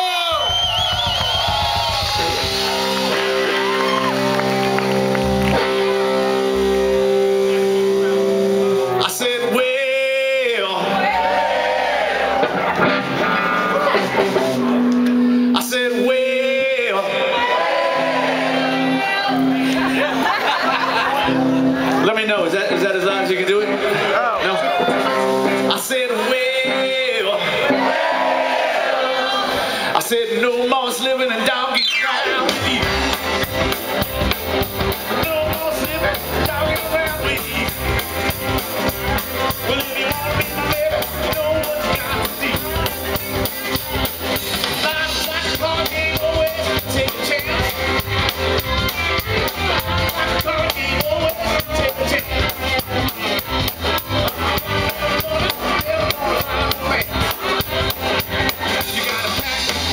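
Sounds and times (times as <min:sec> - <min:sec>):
crowd voices: 0:00.0 - 0:59.9
rock band playing: 0:00.0 - 0:59.9
voices shouting: 0:10.8 - 0:14.3.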